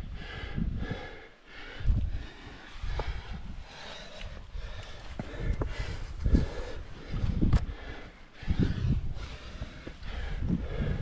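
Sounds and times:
man breathing heavily: 0.0 - 11.0
wind rumble on microphone: 0.0 - 11.0.

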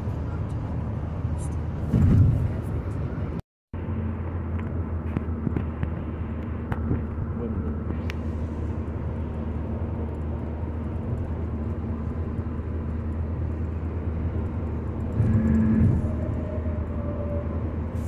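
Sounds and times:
car road noise drone: 0.0 - 18.0.

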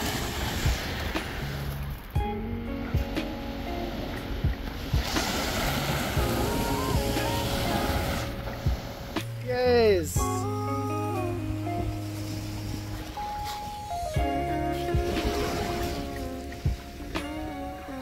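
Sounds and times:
waves washing onto pebbles: 0.0 - 2.2, 3.8 - 10.2, 12.0 - 14.2, 14.8 - 18.0
background music: 0.0 - 18.0.

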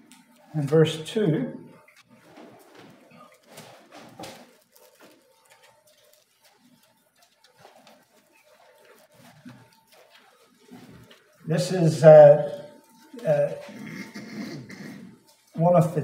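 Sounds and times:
pages rustling: 2.0 - 11.5.

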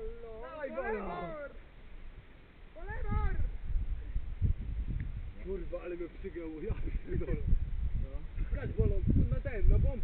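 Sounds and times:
low rumble on microphone: 3.0 - 10.0.

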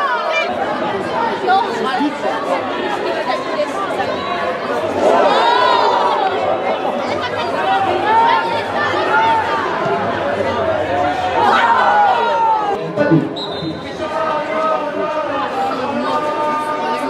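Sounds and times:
overlapping chatter and calls: 0.0 - 17.0.

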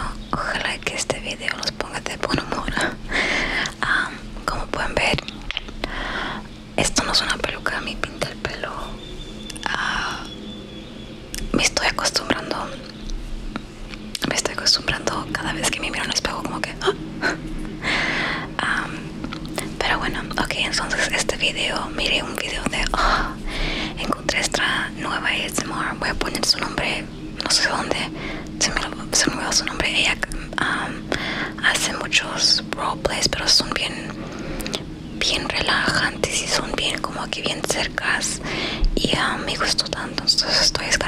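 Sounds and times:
woman whispering: 0.0 - 10.4, 11.4 - 13.0, 14.2 - 41.0.

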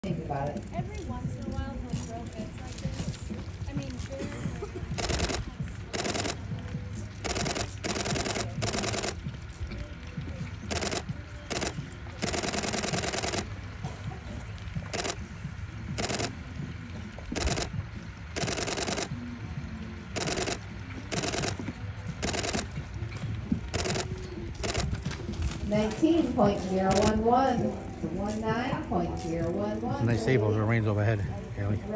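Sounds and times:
loud crackling bursts: 4.9 - 9.6, 10.7 - 13.7, 14.8 - 15.3, 15.9 - 16.5, 17.3 - 19.1, 20.2 - 22.8.

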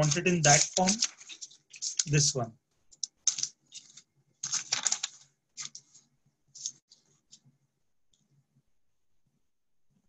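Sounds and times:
scratchy paper rustles and clicks: 0.0 - 7.5.

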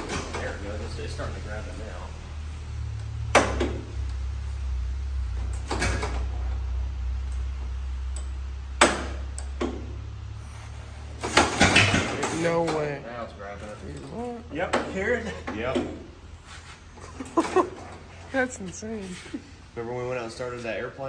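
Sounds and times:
truck engine rumbling: 0.0 - 21.0.

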